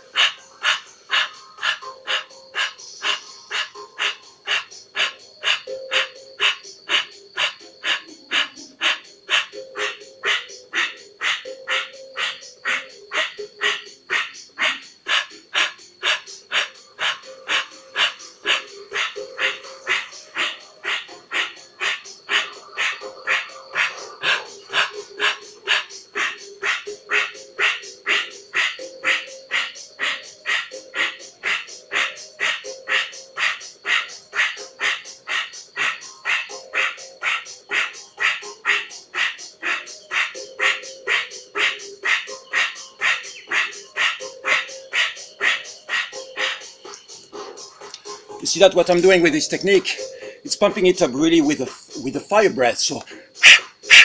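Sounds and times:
rapid forceful breathing: 0:00.0 - 0:46.7, 0:49.9 - 0:50.5, 0:53.0 - 0:54.0.

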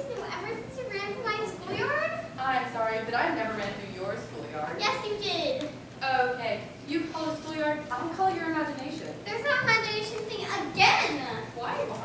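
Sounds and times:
young actors speaking: 0:00.0 - 0:12.0.

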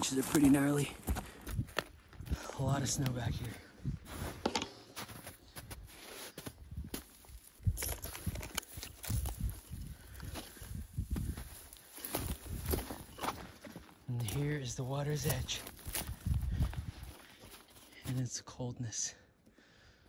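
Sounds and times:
footsteps in snow and brush: 0:00.0 - 0:18.6
twigs brushing: 0:05.9 - 0:18.0.

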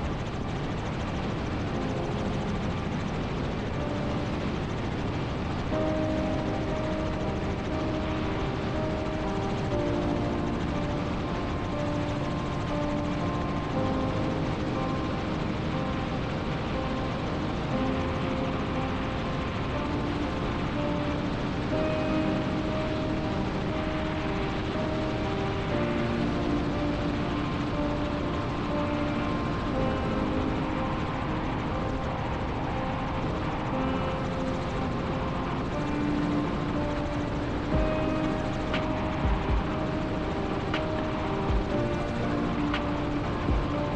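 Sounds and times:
helicopter in flight: 0:00.0 - 0:43.9
slow melody of held notes: 0:00.0 - 0:43.9.

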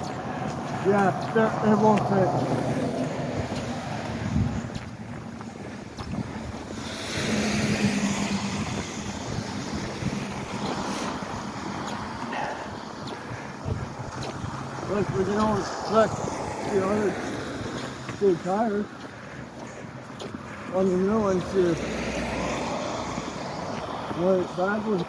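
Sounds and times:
wind on microphone: 0:00.0 - 0:18.3
car passing: 0:00.0 - 0:25.0
traffic on slushy street: 0:00.0 - 0:25.0.

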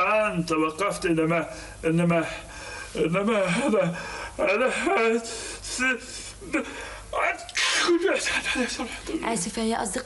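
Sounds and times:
person sneezing: 0:07.5 - 0:08.2.

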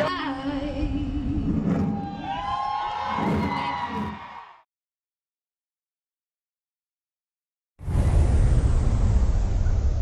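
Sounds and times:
crowd cheering and whooping: 0:01.7 - 0:04.7
people shouting: 0:01.9 - 0:04.6.

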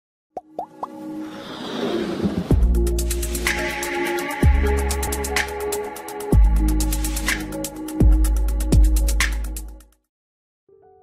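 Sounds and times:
music build with hiss: 0:00.8 - 0:08.1.

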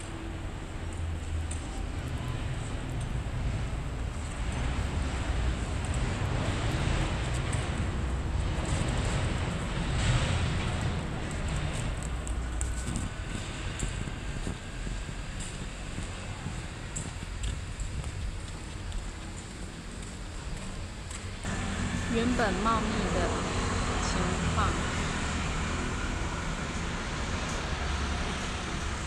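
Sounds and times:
wind buffeting microphone: 0:00.0 - 0:22.6
faint traffic: 0:00.0 - 0:29.0.

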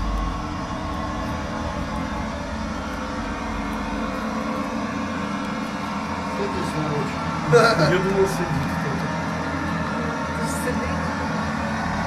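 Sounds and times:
faint hum: 0:00.0 - 0:12.0
steady low rumble: 0:00.0 - 0:12.0.

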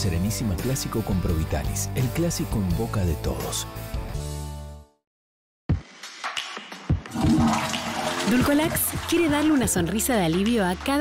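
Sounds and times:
music: 0:00.0 - 0:05.0, 0:05.7 - 0:11.0
toilet flushing: 0:07.1 - 0:09.9.

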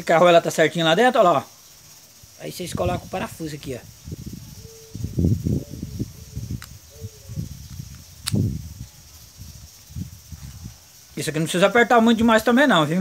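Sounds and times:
sharp metallic clicks: 0:06.5 - 0:06.8, 0:07.6 - 0:08.6.

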